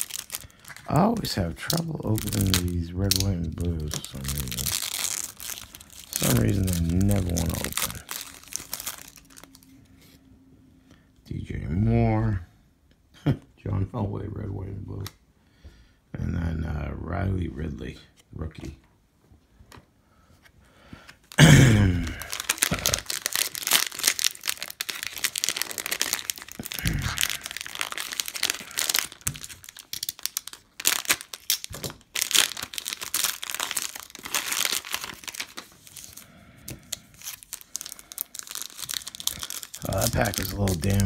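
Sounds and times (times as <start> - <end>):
foil wrapper crinkling and tearing: 0.0 - 9.7, 21.2 - 41.0.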